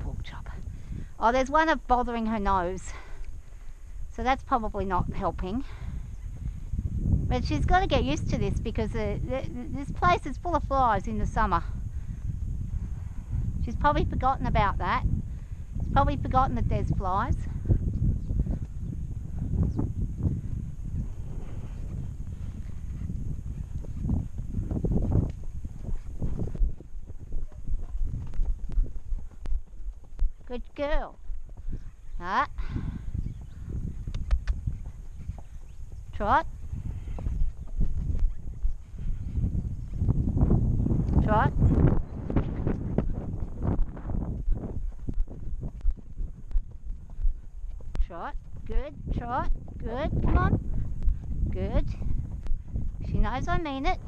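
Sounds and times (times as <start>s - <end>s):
hooves thudding on dirt: 0.0s - 54.0s
wind rumble on microphone: 0.0s - 54.0s.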